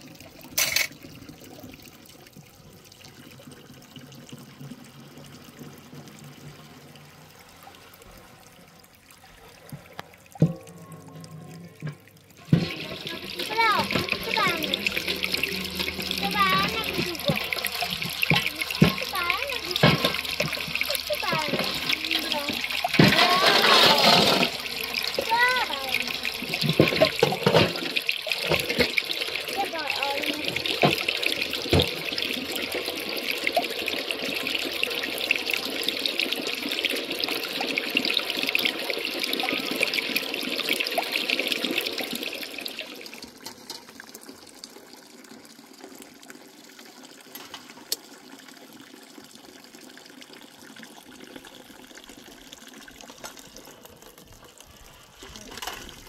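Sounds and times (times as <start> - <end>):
water trickling and splashing: 0.0 - 56.0.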